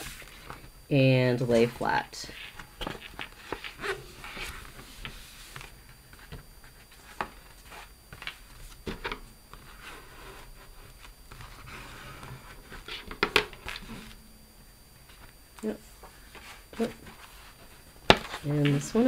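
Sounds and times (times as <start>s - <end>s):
taps and rustles on paper: 18.0s - 18.9s.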